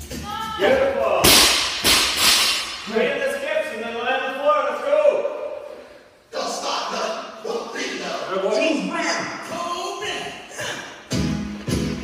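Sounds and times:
barbell crashing onto floor: 0:01.2 - 0:02.9.

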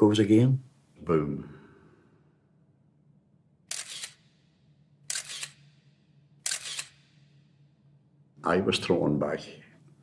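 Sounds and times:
camera shutter clicks: 0:03.7 - 0:04.4, 0:05.0 - 0:07.4.

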